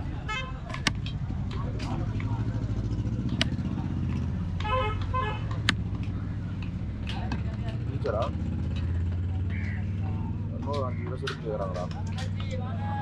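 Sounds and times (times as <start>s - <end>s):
vehicle engine rumbling: 0.0s - 13.0s.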